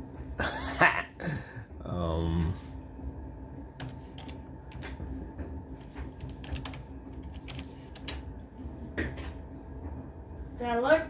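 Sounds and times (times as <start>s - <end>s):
typing on computer keyboard: 3.8s - 4.8s, 5.8s - 8.2s.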